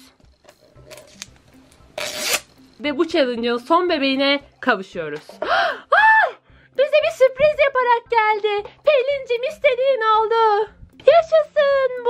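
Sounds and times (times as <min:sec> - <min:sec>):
package tear strip ripped off: 0:00.8 - 0:02.5.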